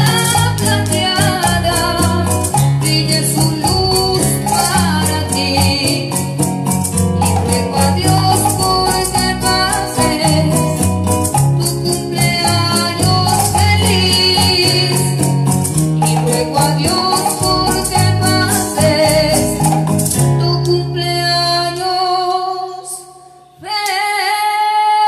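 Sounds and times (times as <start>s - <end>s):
woman singing into a microphone: 0.0s - 6.5s, 7.2s - 25.0s
electronic keyboard accompaniment: 0.0s - 21.2s.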